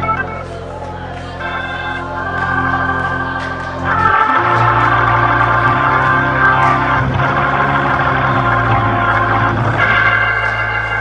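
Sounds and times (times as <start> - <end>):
organ playing held chords: 0.0 - 11.0.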